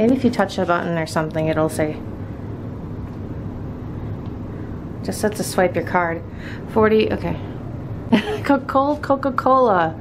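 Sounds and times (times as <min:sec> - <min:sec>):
vending machines humming: 0:00.0 - 0:10.0.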